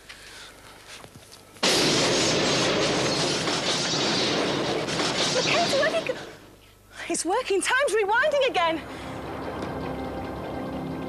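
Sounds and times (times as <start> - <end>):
grenade explosion blast: 1.6 - 6.5.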